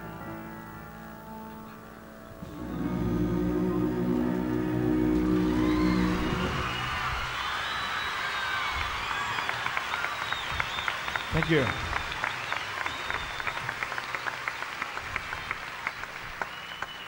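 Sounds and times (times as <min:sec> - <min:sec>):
live band sustained chord: 0:00.0 - 0:07.2
audience cheering and screaming: 0:02.4 - 0:14.1
audience clapping: 0:04.1 - 0:17.0.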